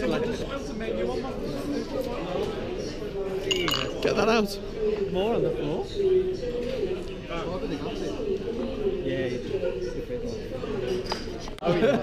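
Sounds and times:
glass clinking: 0:03.4 - 0:04.2.

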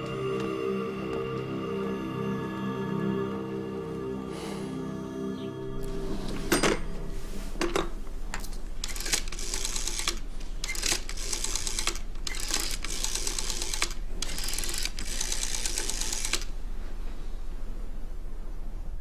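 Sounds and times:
rotary phone dial clicking: 0:08.8 - 0:16.5.

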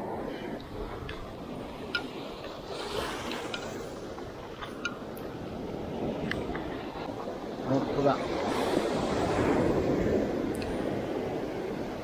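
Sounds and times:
waves washing onto beach: 0:00.0 - 0:12.0.

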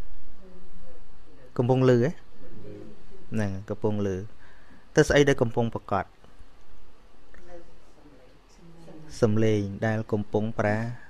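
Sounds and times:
man speaking into a microphone: 0:03.3 - 0:04.4, 0:05.0 - 0:06.1, 0:09.2 - 0:11.0.

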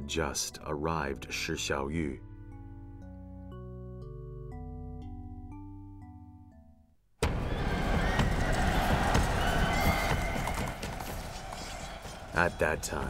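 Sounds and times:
horses galloping: 0:07.6 - 0:13.0.

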